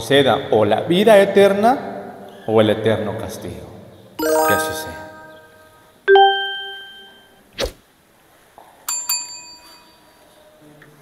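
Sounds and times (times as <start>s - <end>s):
bell-like ding: 4.2s - 7.4s
quick high pings: 4.2s - 7.4s.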